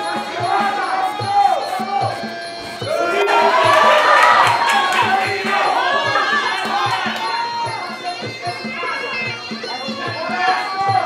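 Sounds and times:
steady drum beat: 0:00.0 - 0:08.8
crowd shouting and cheering: 0:00.0 - 0:11.0.

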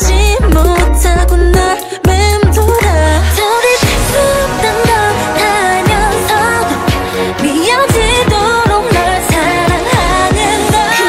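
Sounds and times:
sliding bass notes: 0:00.0 - 0:10.6
female group singing pop: 0:00.0 - 0:11.0.

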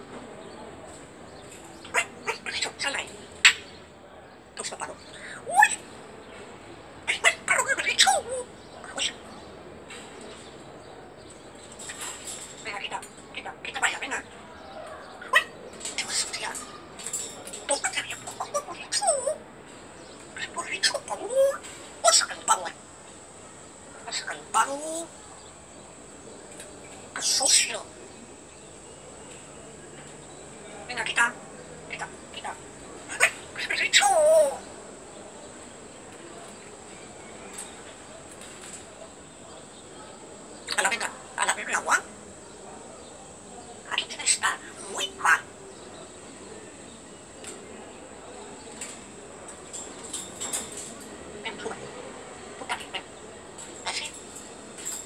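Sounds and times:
steady background hiss: 0:00.0 - 0:55.0
parrot warbling call: 0:07.1 - 0:09.2, 0:30.9 - 0:34.6, 0:40.7 - 0:42.1, 0:43.8 - 0:45.5, 0:52.6 - 0:53.1, 0:53.8 - 0:54.2.

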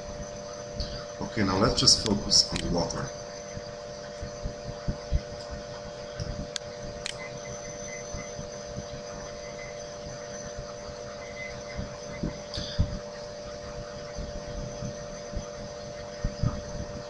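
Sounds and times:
steady electrical hum: 0:00.0 - 0:17.0.

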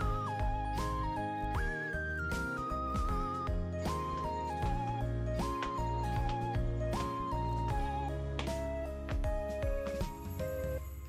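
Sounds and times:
light melodic background music: 0:00.0 - 0:11.0.

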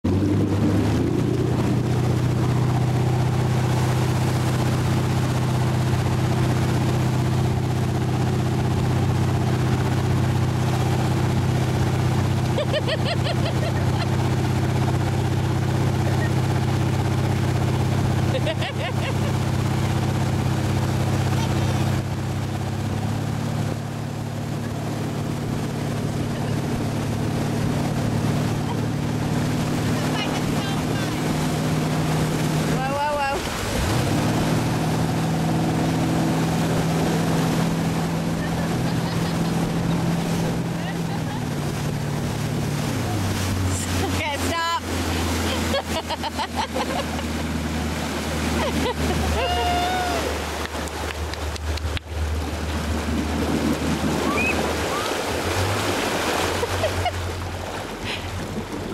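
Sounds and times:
motorboat engine running: 0:00.0 - 0:58.9
wake rushing and splashing: 0:00.0 - 0:58.9.

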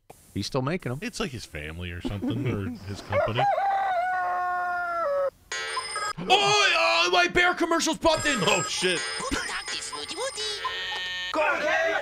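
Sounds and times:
rooster crowing: 0:03.1 - 0:05.4.

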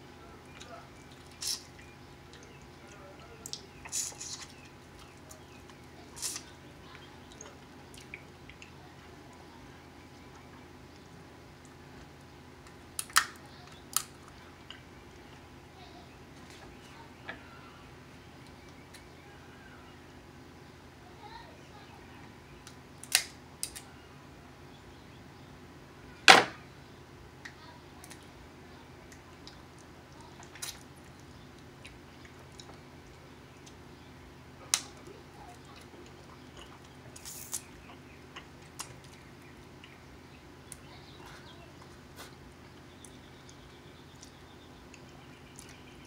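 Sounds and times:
crab shells cracking: 0:12.9 - 0:14.2, 0:22.7 - 0:23.9
chewing and sucking: 0:35.6 - 0:40.0.

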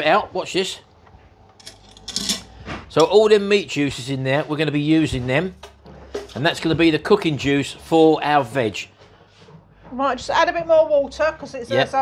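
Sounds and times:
wire trivet clinking against metal pot: 0:01.6 - 0:02.5.

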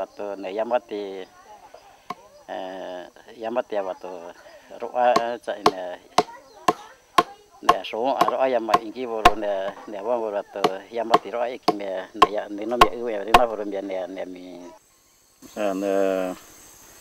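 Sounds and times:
man speaking: 0:00.0 - 0:01.3, 0:02.5 - 0:06.2, 0:07.6 - 0:14.8, 0:15.4 - 0:16.4
rhythmic knocks of chopping: 0:05.0 - 0:13.9.

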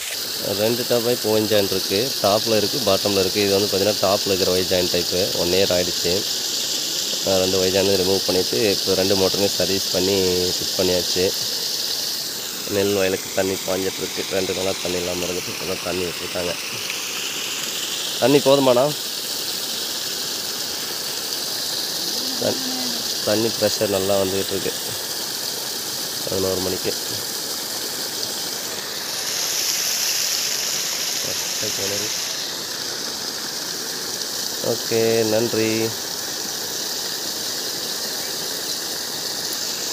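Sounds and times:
water gushing and splashing on ground: 0:00.0 - 0:39.9.

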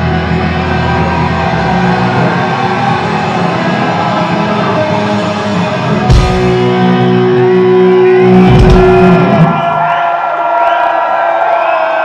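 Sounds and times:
live rock band playing: 0:00.0 - 0:09.6.

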